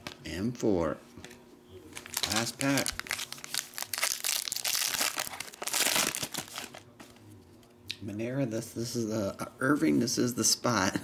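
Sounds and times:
foil wrapper crinkling: 1.9s - 6.9s.

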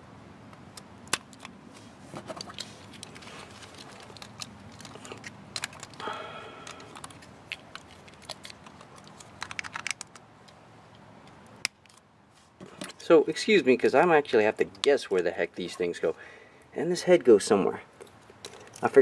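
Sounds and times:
plastic toy parts clicking: 3.0s - 6.0s, 6.6s - 10.6s.

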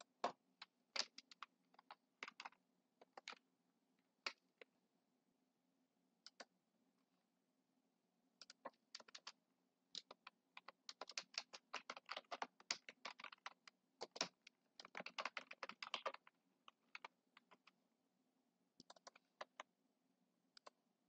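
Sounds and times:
computer keyboard typing: 1.0s - 3.4s, 8.4s - 9.3s, 10.0s - 17.7s, 18.8s - 19.6s.

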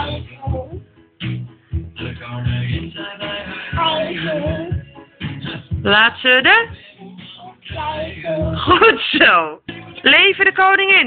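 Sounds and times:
person singing: 0.0s - 0.8s, 2.0s - 5.9s, 6.6s - 9.0s, 9.6s - 10.1s.

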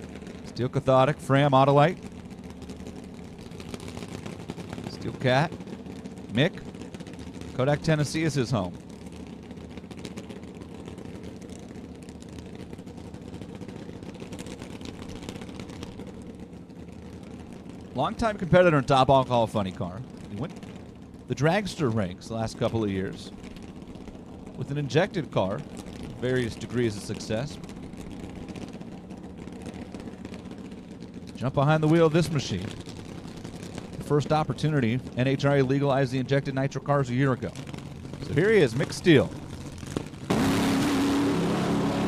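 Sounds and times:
race car engine idling: 0.0s - 42.0s.

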